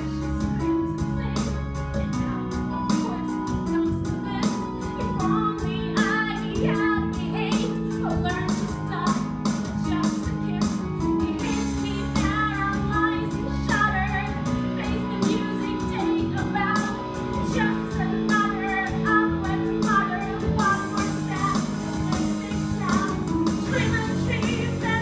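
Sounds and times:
instrumental accompaniment with beat: 0.0s - 25.0s
woman singing: 0.0s - 25.0s.

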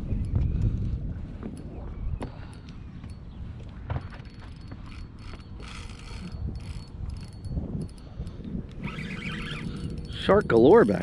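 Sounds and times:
fishing reel clicking: 4.4s - 11.0s.

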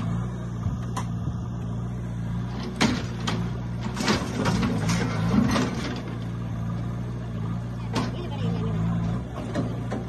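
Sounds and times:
diesel engine idling: 0.0s - 10.0s.

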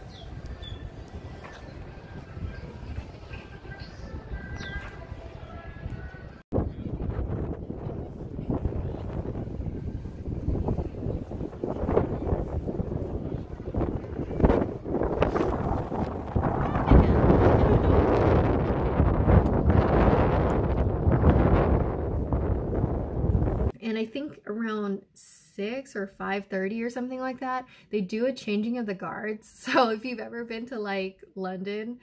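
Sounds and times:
wind buffeting microphone: 0.0s - 23.8s.

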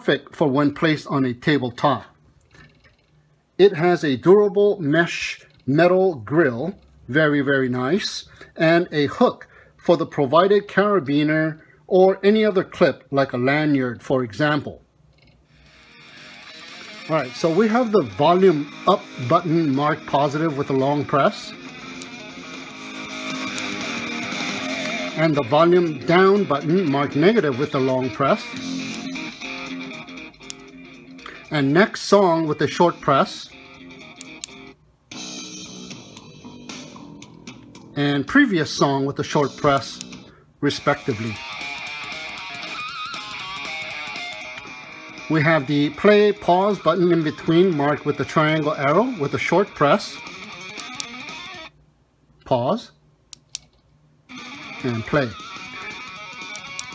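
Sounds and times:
guitar music from speaker: 15.6s - 38.0s, 39.0s - 51.8s, 54.3s - 56.9s.

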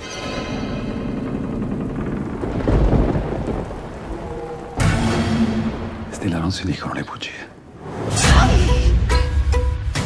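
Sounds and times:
thunder rolling: 0.7s - 6.5s
steady rain: 0.9s - 8.1s.

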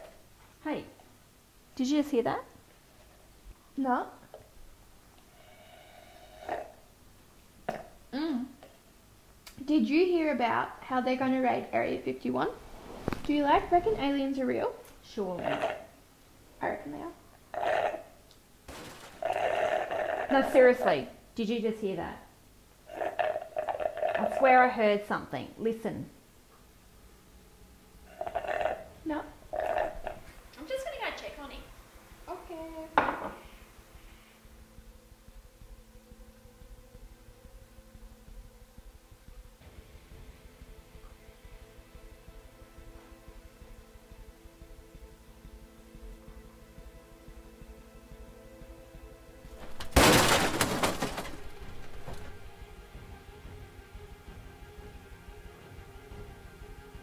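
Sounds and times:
low music drone: 33.8s - 49.6s, 51.5s - 57.0s
loud crashing hit: 49.6s - 52.5s.

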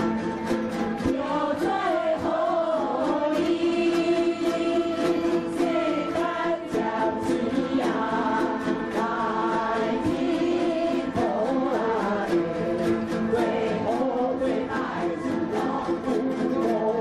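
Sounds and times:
large chorus singing in unison: 0.0s - 17.0s
lutes strummed together: 0.0s - 17.0s.

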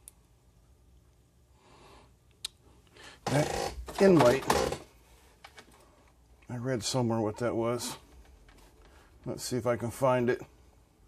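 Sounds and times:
man speaking: 3.2s - 4.7s, 6.5s - 8.1s, 9.2s - 10.5s.

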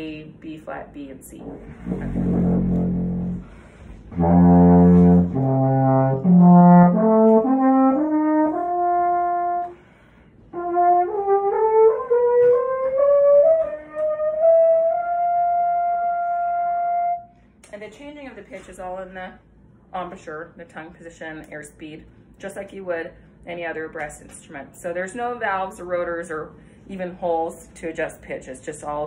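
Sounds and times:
alphorn notes: 1.4s - 9.8s, 10.5s - 17.3s.

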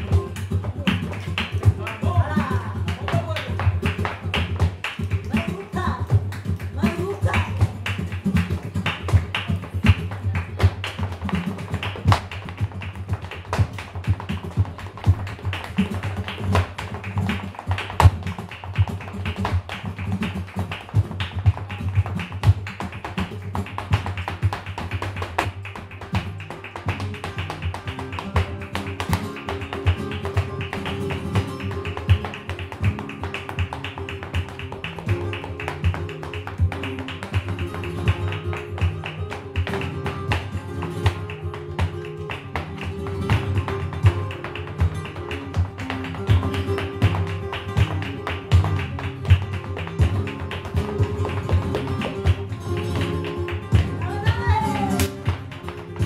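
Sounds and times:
flamenco guitars: 0.0s - 56.0s
shoes striking a wooden stage: 0.0s - 56.0s.

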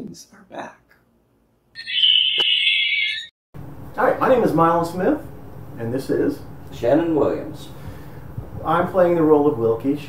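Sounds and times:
shrill alarm tone: 1.8s - 3.4s.

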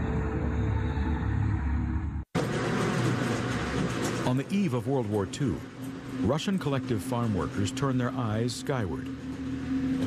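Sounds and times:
music: 0.0s - 2.3s
steady rushing mechanical noise: 2.4s - 10.0s.

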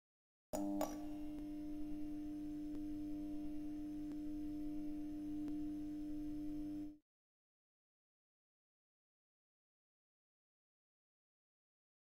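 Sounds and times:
steady electronic tone: 0.6s - 7.0s.

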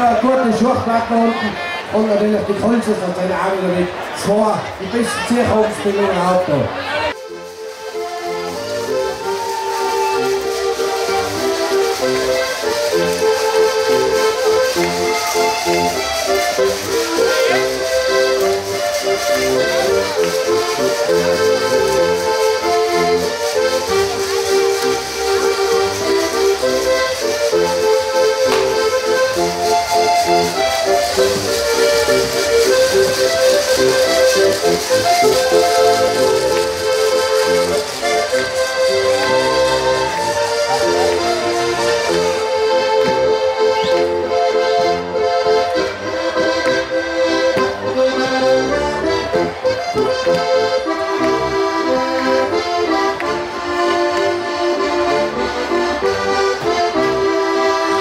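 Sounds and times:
button accordion folk tune: 0.0s - 58.0s.

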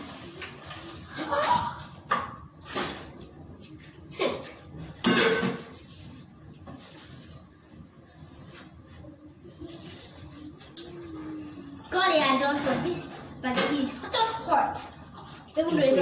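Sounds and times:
metal pots and lids clanking: 5.0s - 5.8s.

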